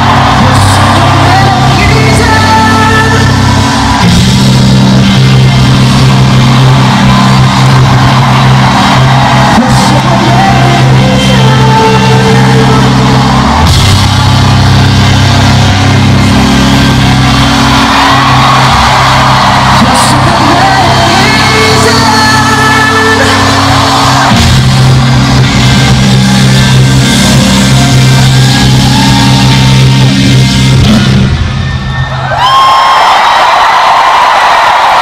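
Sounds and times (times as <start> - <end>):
heavy bass line: 0.0 - 32.0
live band music: 0.0 - 32.0.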